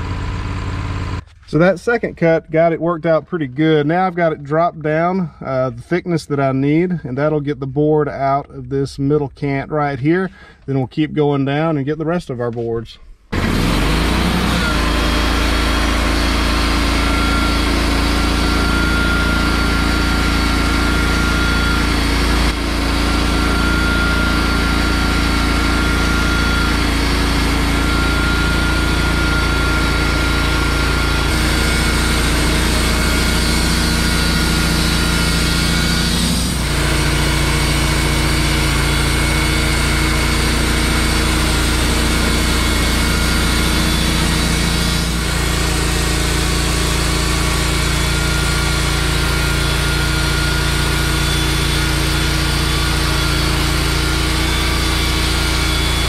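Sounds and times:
band sawmill cutting wood: 0.0s - 4.7s, 13.3s - 56.0s.

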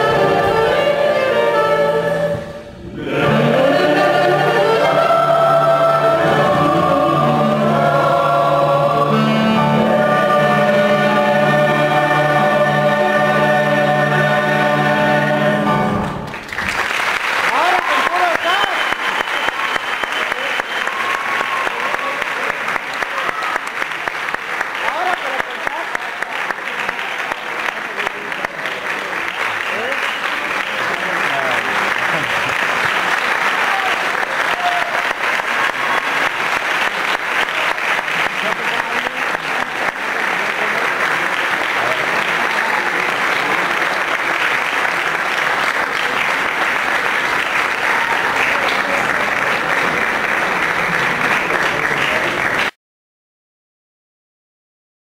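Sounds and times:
audience applauding: 10.0s - 52.8s.

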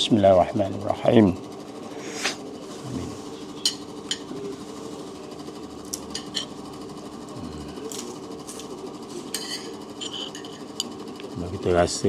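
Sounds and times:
low background hum: 0.0s - 12.0s
cutlery clinking on a plate: 6.0s - 6.5s, 9.2s - 10.9s.

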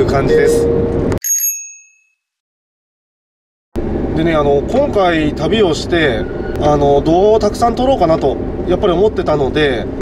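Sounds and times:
in-car road noise: 0.0s - 1.2s, 3.8s - 10.0s
bell ding: 0.3s - 2.3s.

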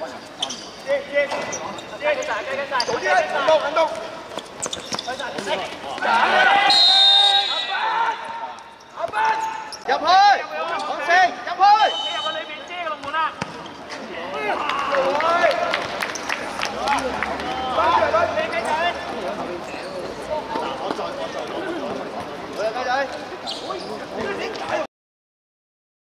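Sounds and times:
men shouting and calling: 5.4s - 13.3s, 16.8s - 19.0s
ball kicked and bouncing: 13.0s - 14.0s.

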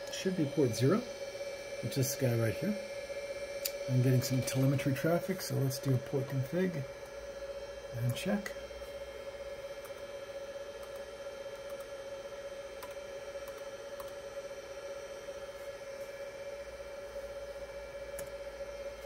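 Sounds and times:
cooling fans whining: 0.0s - 19.0s
low hum: 0.0s - 19.0s.

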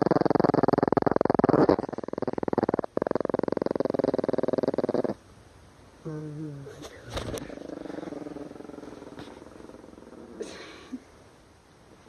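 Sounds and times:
small dog growling: 0.0s - 5.2s, 6.0s - 11.0s.

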